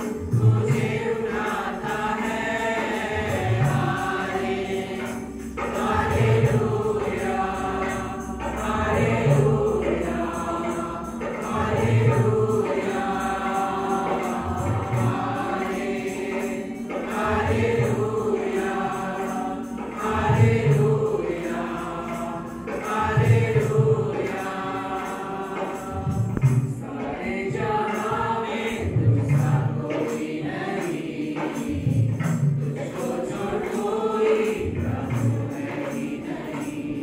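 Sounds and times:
group singing worship song: 0.0 - 37.0.

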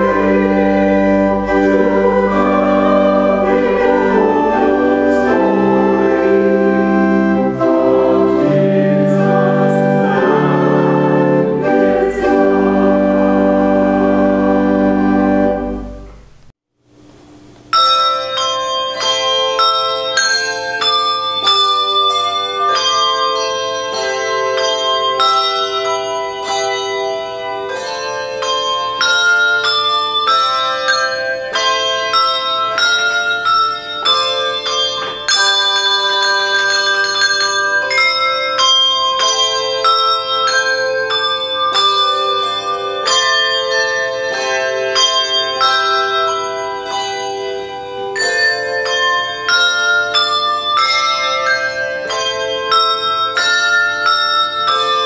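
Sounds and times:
handbell choir playing: 0.0 - 16.1, 17.7 - 55.0.

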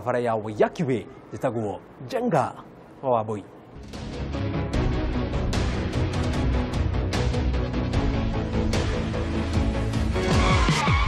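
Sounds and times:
theme music: 3.8 - 11.0.

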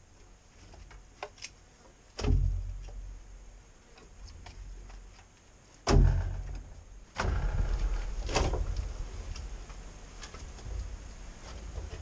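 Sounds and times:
heavy wooden thud: 2.2 - 2.9, 5.8 - 9.3.

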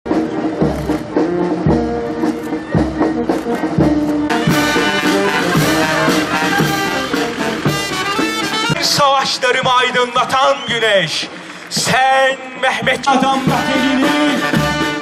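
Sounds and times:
low drum beat: 0.1 - 12.1
brass band playing: 0.1 - 15.0.

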